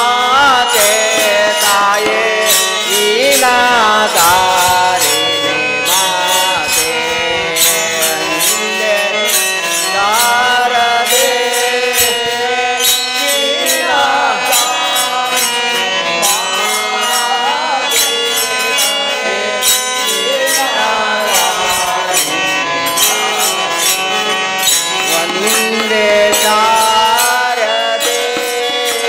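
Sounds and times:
instrumental accompaniment: 0.0s - 29.0s
man singing devotional song: 0.0s - 29.0s
percussion beat: 0.0s - 29.0s.

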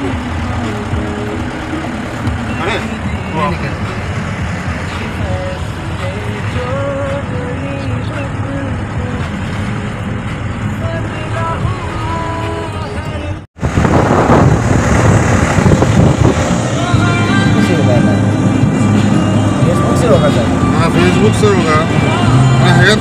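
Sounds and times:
vehicle engine and road rumble: 0.0s - 23.0s.

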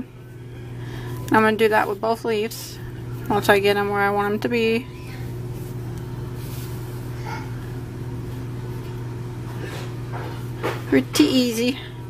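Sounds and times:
low background hum: 0.0s - 12.0s
rustles of yarn and fabric: 5.5s - 7.1s.

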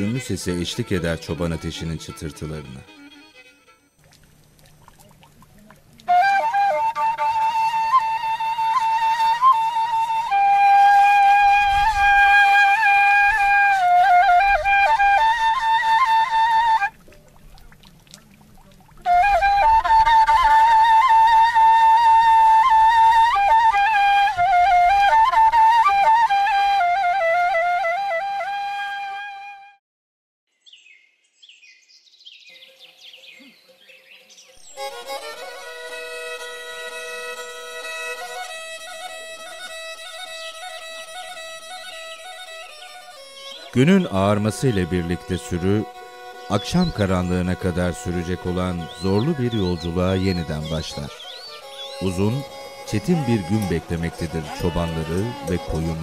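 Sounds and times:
background music of held notes: 0.0s - 4.0s, 6.1s - 16.9s, 19.1s - 28.3s, 34.6s - 56.0s
flute playing slow melody: 0.0s - 4.0s, 6.0s - 17.4s, 19.0s - 29.8s, 34.6s - 56.0s.

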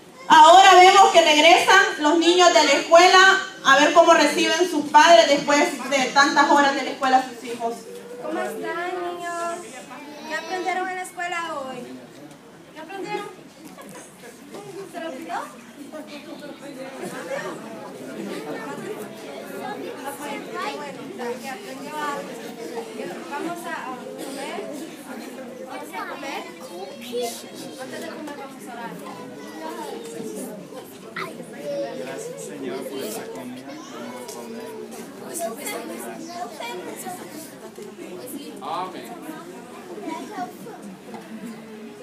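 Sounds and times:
indistinct chatter of people: 0.0s - 42.0s.

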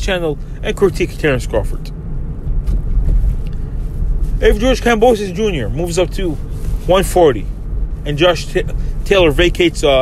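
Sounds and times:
car interior rumble: 0.0s - 10.0s.

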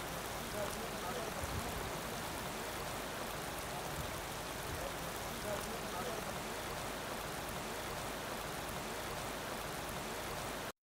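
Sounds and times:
water rushing: 0.0s - 10.7s.

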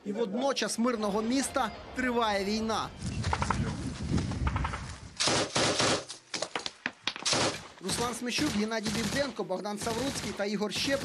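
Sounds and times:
machine gun firing: 4.6s - 6.1s, 7.2s - 11.0s.

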